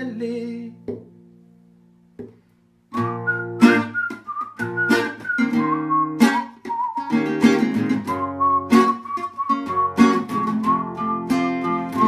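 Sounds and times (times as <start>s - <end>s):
acoustic guitar strumming chords: 2.9s - 12.0s
whistled melody: 2.9s - 12.0s.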